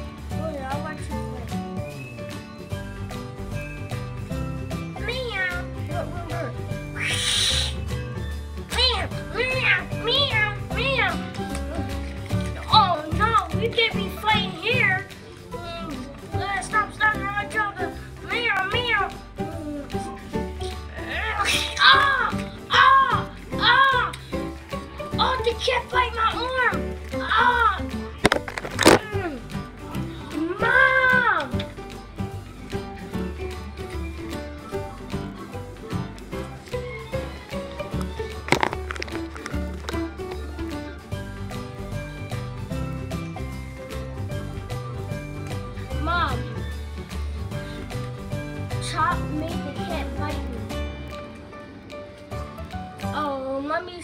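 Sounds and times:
background music with bass: 0:00.0 - 0:25.4, 0:26.0 - 0:53.6
cat hissing: 0:07.0 - 0:07.8.

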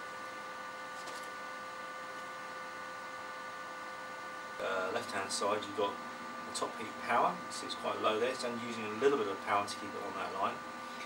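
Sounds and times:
electrical equipment hum and hiss: 0:00.0 - 0:11.0.

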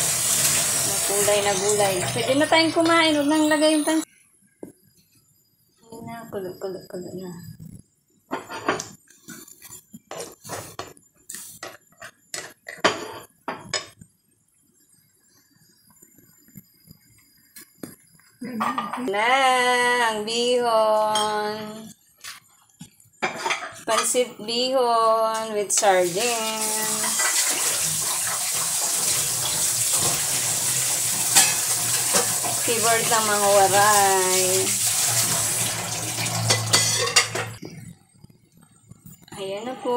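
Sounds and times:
noodles sizzling in a pan: 0:00.0 - 0:04.1, 0:23.2 - 0:37.6
spatula scraping a pan: 0:26.8 - 0:33.2, 0:36.1 - 0:37.6.

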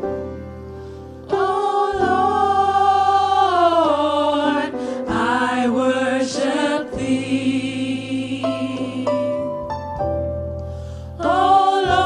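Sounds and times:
piano accompaniment: 0:00.0 - 0:12.0
voices singing gospel song: 0:01.3 - 0:09.7, 0:11.1 - 0:12.0.

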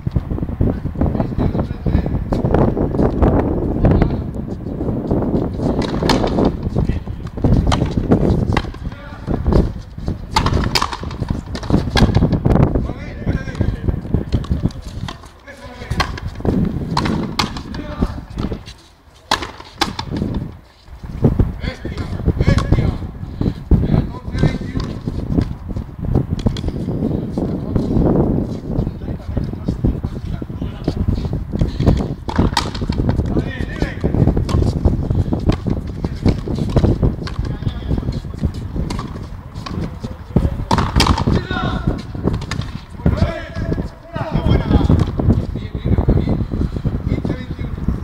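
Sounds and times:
ball cracking off rackets and wall: 0:05.6 - 0:06.8, 0:07.4 - 0:09.6, 0:10.3 - 0:12.4, 0:14.4 - 0:18.6, 0:19.2 - 0:20.5, 0:31.8 - 0:33.2, 0:40.7 - 0:41.5, 0:42.2 - 0:43.2.

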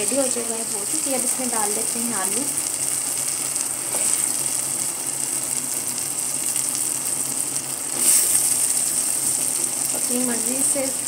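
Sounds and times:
masala sizzling in oil: 0:00.0 - 0:11.0.

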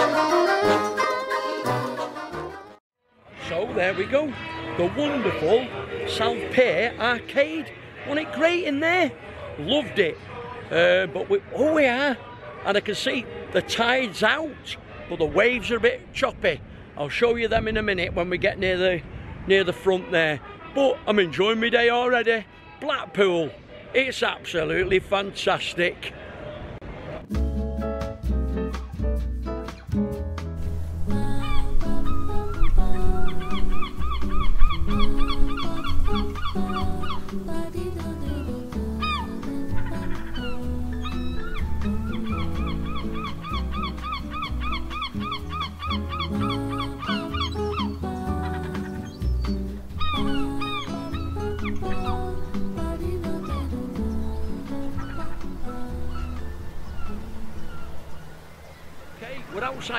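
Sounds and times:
background music with pulsing bass: 0:27.3 - 0:57.0.

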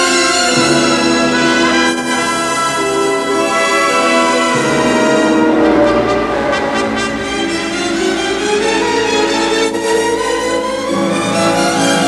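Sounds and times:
orchestral brass chords: 0:00.0 - 0:12.0.

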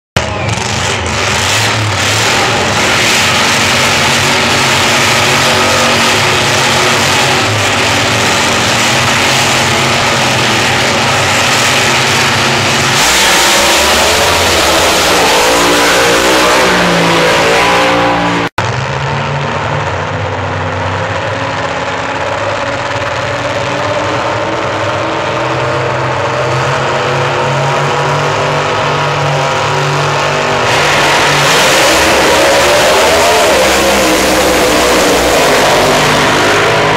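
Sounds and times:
drag racing car engines revving: 0:00.2 - 0:36.9.

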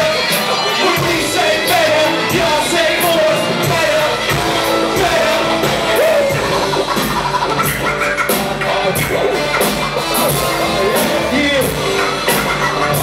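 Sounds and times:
drums and cymbals: 0:00.0 - 0:13.0
electric guitar: 0:00.0 - 0:13.0
sliding melody line: 0:00.0 - 0:13.0.

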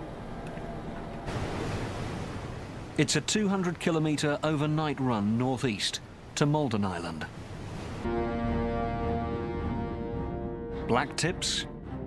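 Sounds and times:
ship engine low rumble: 0:00.0 - 0:05.0
water rushing against hull: 0:00.0 - 0:08.1.

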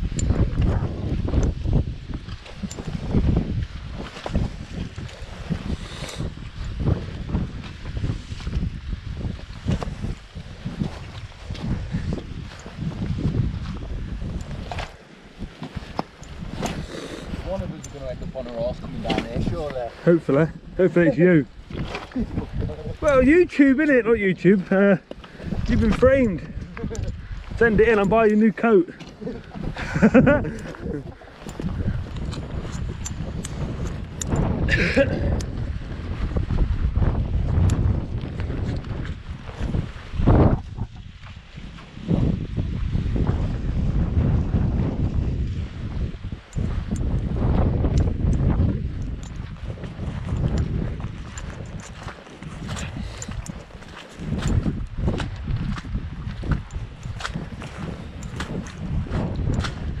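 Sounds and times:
wind buffeting microphone: 0:00.0 - 1:00.0
footsteps on grass and stones: 0:00.3 - 0:23.0, 0:24.5 - 0:34.2, 0:34.8 - 0:42.9, 0:46.6 - 1:00.0.

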